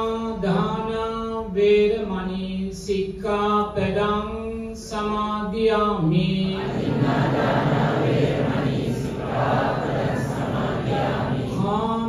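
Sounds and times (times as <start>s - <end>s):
congregation chanting in unison: 6.0s - 12.0s.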